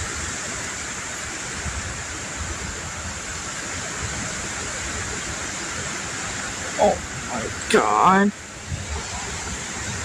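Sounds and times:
strong wind through trees: 0.0 - 10.0.

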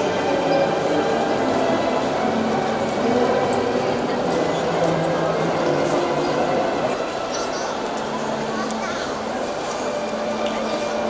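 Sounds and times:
crowd talking in echoing hall: 0.0 - 11.0.

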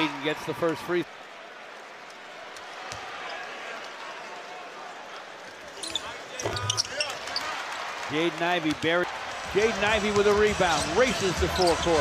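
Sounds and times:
shoe squeaks: 5.8 - 7.2
arena crowd murmuring: 8.2 - 12.0.

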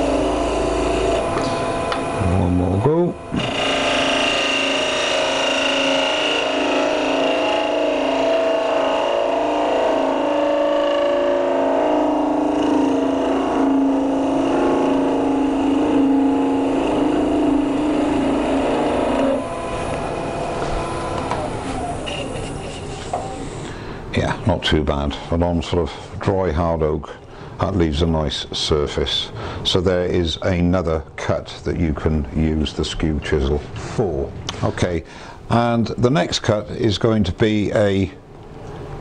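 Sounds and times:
wood lathe humming: 0.0 - 23.7
chisel cutting wood: 3.3 - 23.2.

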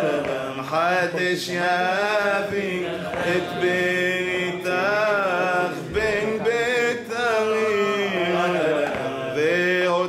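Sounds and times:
man singing melismas: 0.0 - 10.0.

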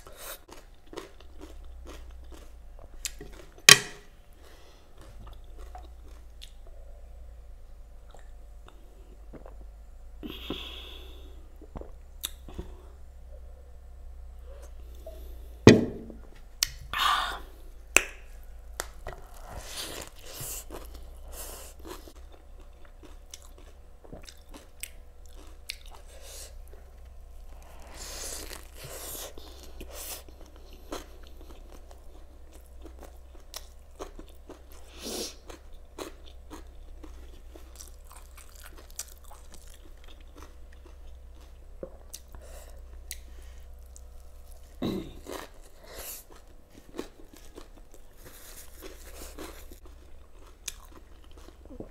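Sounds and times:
close-up chewing with crunches: 0.0 - 3.7, 4.4 - 6.7, 18.8 - 51.9
steady low hum: 0.0 - 51.9.

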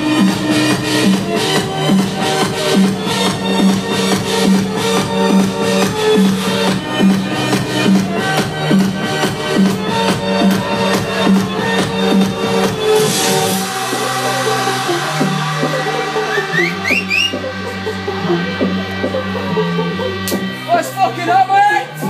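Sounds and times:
electronic dance music: 0.0 - 22.0.

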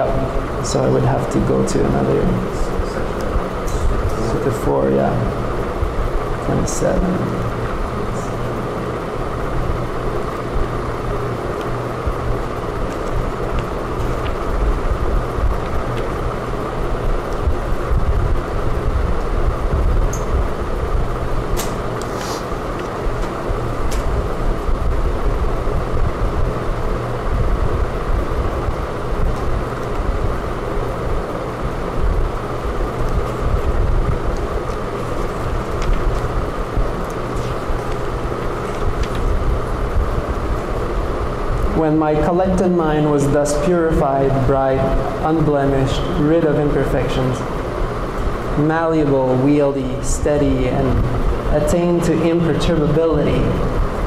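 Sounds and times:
low background rumble and hum: 0.0 - 54.0.

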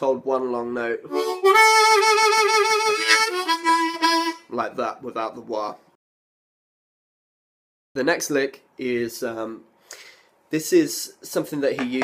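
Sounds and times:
blues harmonica long note: 1.1 - 4.5.

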